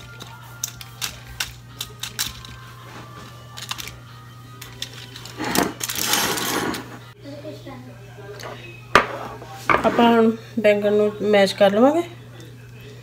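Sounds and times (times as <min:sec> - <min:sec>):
aluminium foil crinkling: 0:03.5 - 0:04.0.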